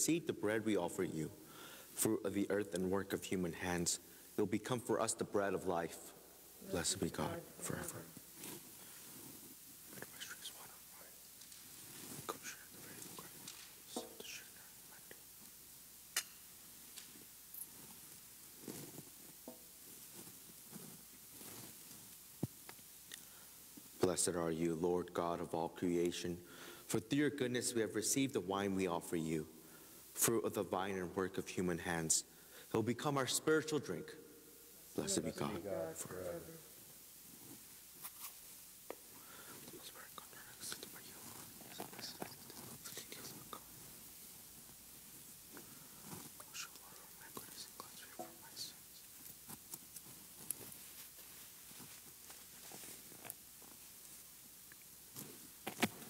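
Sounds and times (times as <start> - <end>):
whispered prayer: 0.0 - 15.5, 39.0 - 44.0, 45.5 - 49.7.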